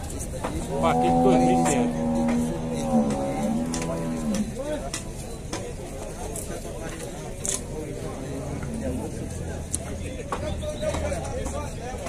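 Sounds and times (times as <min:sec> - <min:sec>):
cow mooing: 0:00.7 - 0:04.5.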